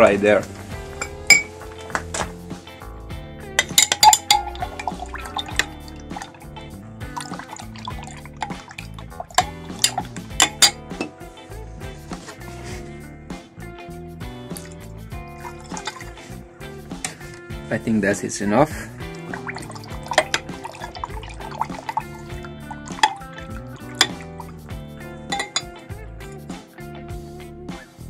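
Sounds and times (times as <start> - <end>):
background music: 0.0 - 28.0
glass rod clinking against beaker: 1.0 - 1.5, 3.6 - 5.7, 9.4 - 11.1, 25.3 - 25.7.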